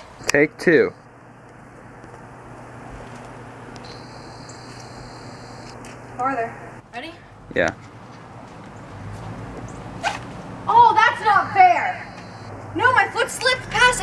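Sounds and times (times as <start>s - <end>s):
faint low hum: 0.0s - 7.3s.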